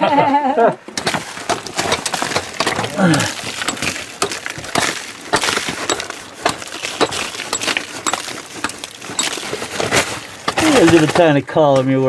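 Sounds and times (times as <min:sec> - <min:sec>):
clicks of broken rock: 0:00.8 - 0:11.8
hand tool striking rock: 0:01.0 - 0:11.3.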